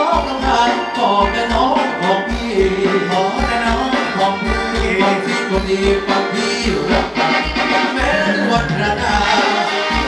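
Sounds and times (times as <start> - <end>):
live band playing dance music: 0.0 - 10.0
steady bass beat: 0.2 - 10.0.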